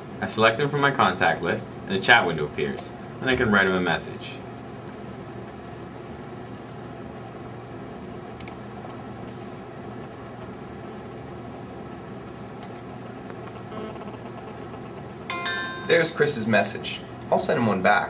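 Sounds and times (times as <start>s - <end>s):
low mechanical hum: 0.0s - 18.0s.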